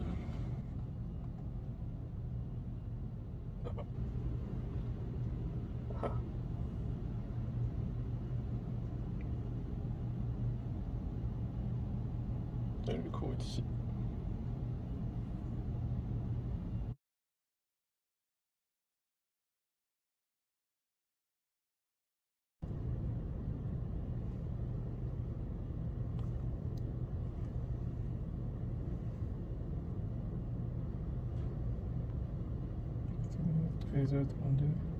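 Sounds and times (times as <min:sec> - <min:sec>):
constant hum: 0:00.0 - 0:17.0, 0:22.6 - 0:34.9
low background rumble: 0:00.0 - 0:17.0, 0:22.6 - 0:34.9.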